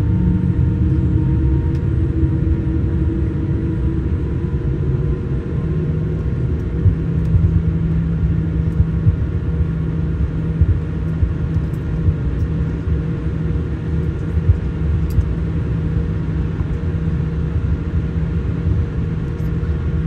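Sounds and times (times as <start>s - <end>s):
airliner cabin rumble: 0.0s - 20.0s.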